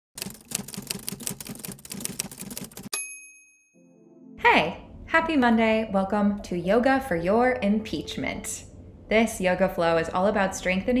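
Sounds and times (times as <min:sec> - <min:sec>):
typewriter keystrokes: 0:00.2 - 0:02.9
typewriter bell ding: 0:02.8 - 0:03.7.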